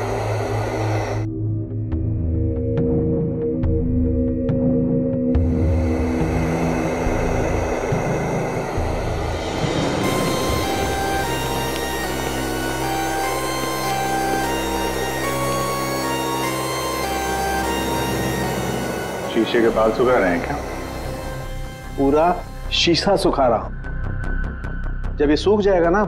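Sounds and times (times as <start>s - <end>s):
low rushing swell: 0.0s - 1.3s, 5.4s - 24.8s
sustained low drone: 0.0s - 4.4s, 5.3s - 25.2s
short high notes: 10.0s - 23.5s.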